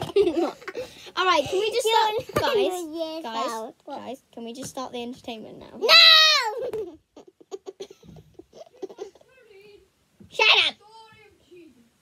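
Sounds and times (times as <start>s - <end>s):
child giggling: 0.0s - 1.0s, 6.1s - 9.8s.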